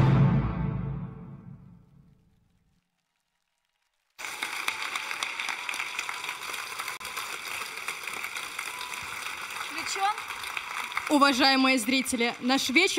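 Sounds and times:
audience applauding: 0:02.8 - 0:12.9.

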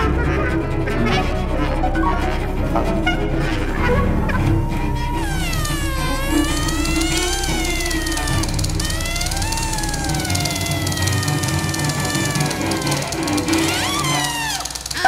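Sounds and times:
siren-like pitch glides: 0:00.0 - 0:14.7
low held note: 0:01.5 - 0:12.9.

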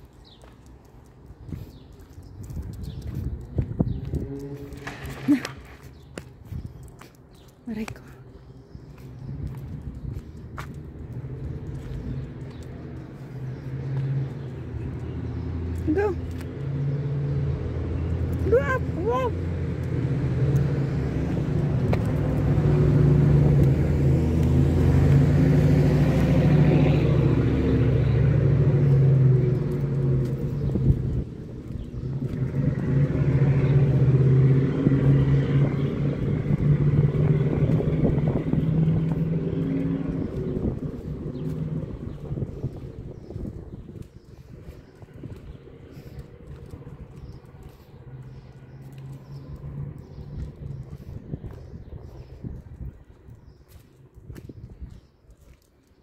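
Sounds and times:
vehicle engine running: 0:17.4 - 0:51.6.

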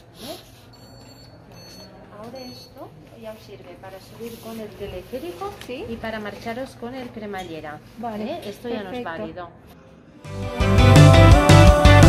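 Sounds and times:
card terminal beep: 0:00.7 - 0:02.8.

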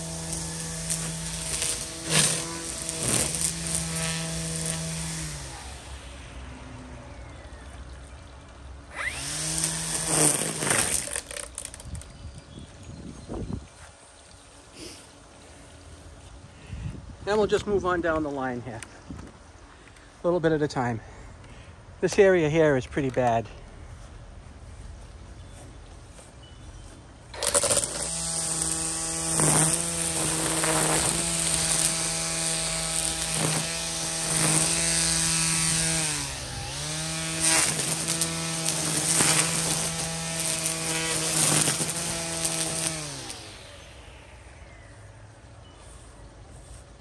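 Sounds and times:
trimmer line hitting stalks: 0:00.0 - 0:06.0, 0:08.9 - 0:12.2, 0:27.3 - 0:44.1
string trimmer motor whining: 0:00.0 - 0:07.3, 0:08.8 - 0:12.2, 0:27.3 - 0:45.0.

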